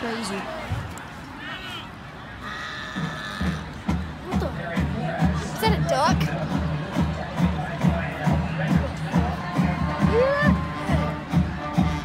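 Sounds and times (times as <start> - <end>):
horn steady note: 9.8 - 12.0.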